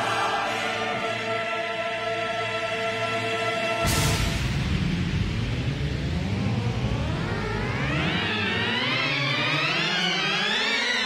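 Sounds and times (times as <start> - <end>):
low bass drone: 3.8 - 10.6
white-noise sweep: 3.8 - 11.0
rising synth tones: 4.3 - 11.0.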